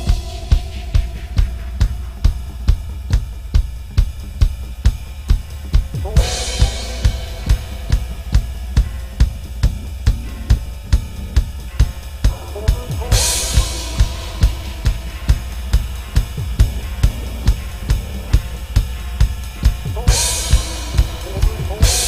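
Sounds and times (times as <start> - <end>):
crash cymbal: 0.0 - 22.0
kick drum: 0.0 - 22.0
low bass backing track: 0.0 - 22.0
snare and hi-hat: 0.0 - 22.0.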